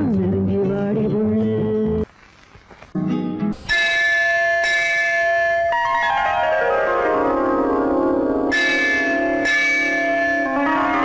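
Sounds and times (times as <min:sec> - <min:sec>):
bell-like chime ringing: 0:03.7 - 0:07.8, 0:08.5 - 0:11.0.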